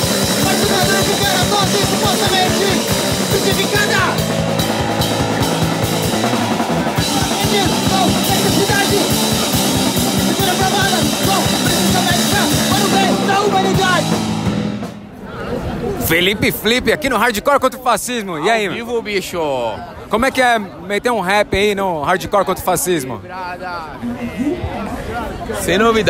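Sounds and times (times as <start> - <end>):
shouted vocals: 0.0 - 14.1
hardcore punk band playing: 0.0 - 15.2.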